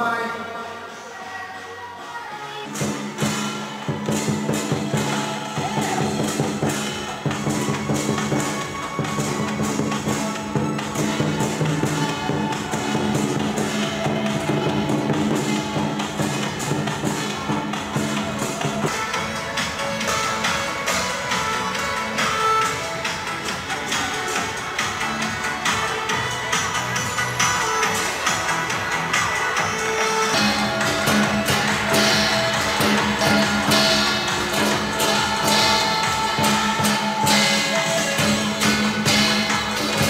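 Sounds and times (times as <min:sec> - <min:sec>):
drum cymbals and gong rhythm: 0:02.6 - 0:40.0.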